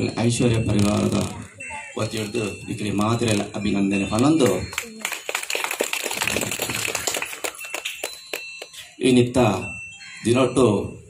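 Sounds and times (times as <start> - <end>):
small group applauding: 4.2 - 8.8.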